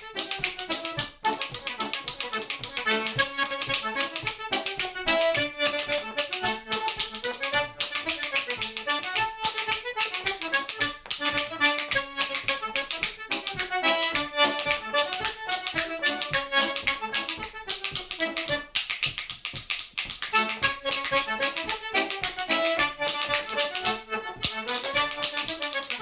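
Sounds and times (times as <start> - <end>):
button accordion melody: 0.0 - 19.2, 20.2 - 26.0
hand percussion clacking: 0.0 - 26.0.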